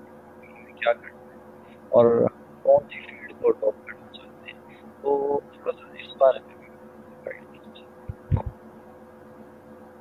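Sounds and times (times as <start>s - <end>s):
steady electrical hum: 0.0s - 10.0s
garbled voice over call: 0.5s - 1.2s, 2.0s - 6.5s.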